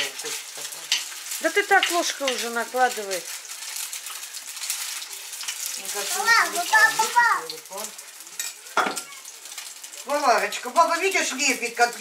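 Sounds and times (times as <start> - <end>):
meat sizzling in a frying pan: 0.0 - 12.0
spoon working in a pan: 0.0 - 12.0.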